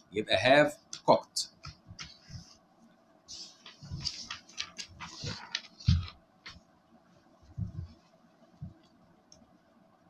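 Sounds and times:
paper rustling and crinkling: 3.3 - 6.6.

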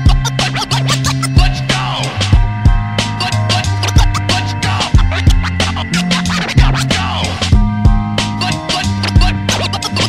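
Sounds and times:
turntable scratching: 0.0 - 2.4, 3.0 - 7.6, 8.4 - 10.0
bass line: 0.0 - 10.0
hip-hop drum beat: 0.0 - 10.0.

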